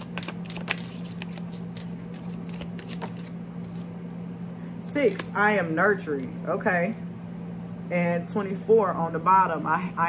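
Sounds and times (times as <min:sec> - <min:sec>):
cards being shuffled: 0:00.0 - 0:03.9.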